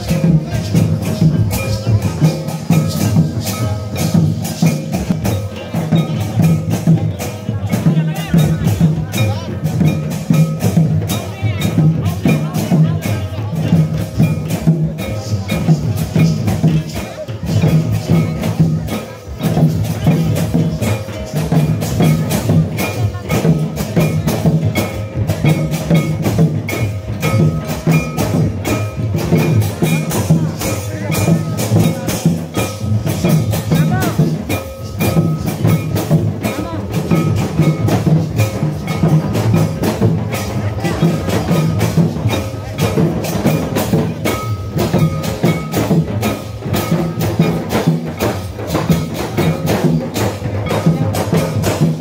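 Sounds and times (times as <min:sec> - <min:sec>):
clicking percussion: 0:00.0 - 0:52.0
folk dance music: 0:00.0 - 0:52.0
repeating drum beat: 0:00.0 - 0:52.0.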